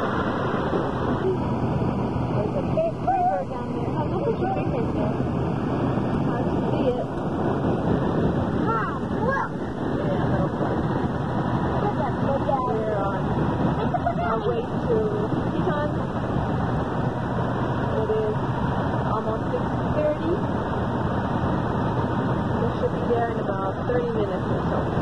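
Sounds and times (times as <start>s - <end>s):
road and engine noise: 0.0s - 25.0s.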